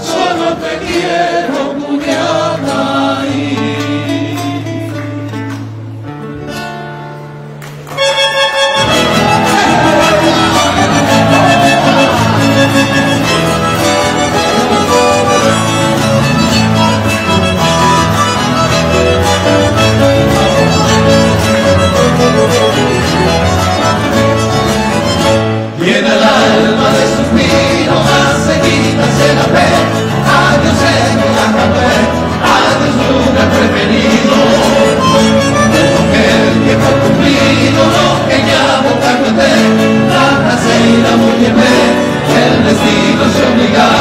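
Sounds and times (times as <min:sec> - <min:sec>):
folk band playing: 0:00.0 - 0:44.0
strummed strings accompaniment: 0:00.0 - 0:44.0
violin melody: 0:07.9 - 0:25.8, 0:26.6 - 0:44.0
person singing: 0:08.9 - 0:16.0, 0:25.8 - 0:44.0.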